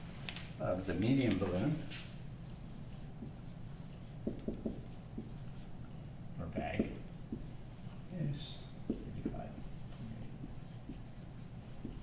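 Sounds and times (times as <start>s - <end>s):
low steady hum: 0.0s - 12.0s
marker writing on whiteboard: 2.4s - 12.0s.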